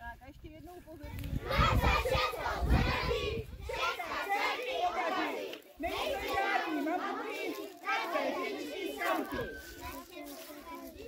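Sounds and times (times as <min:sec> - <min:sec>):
young children shouting: 0:03.8 - 0:10.5.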